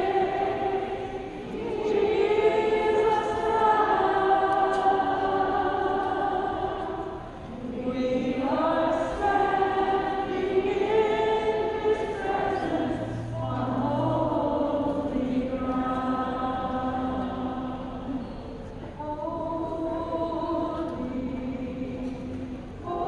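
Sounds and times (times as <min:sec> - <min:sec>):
women singing together: 0:00.0 - 0:23.0.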